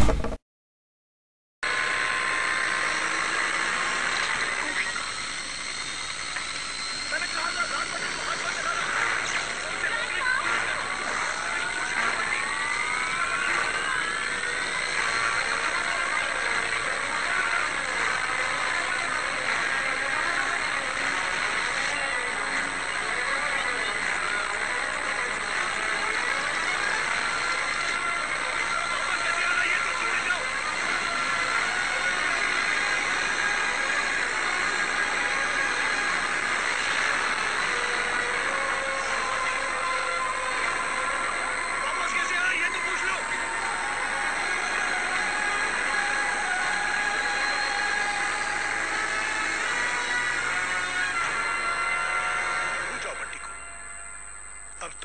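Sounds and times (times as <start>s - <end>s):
rising whines: 2.0s - 9.9s, 10.7s - 54.9s.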